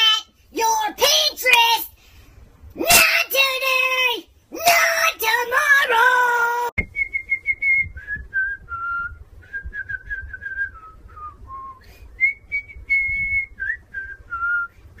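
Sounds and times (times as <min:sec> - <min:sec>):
person whistling a tune: 0:06.8 - 0:14.8.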